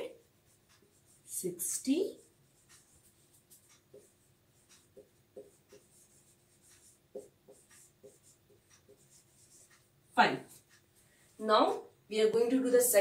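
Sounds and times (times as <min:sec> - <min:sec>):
marker squeaking on whiteboard: 0:02.2 - 0:10.9.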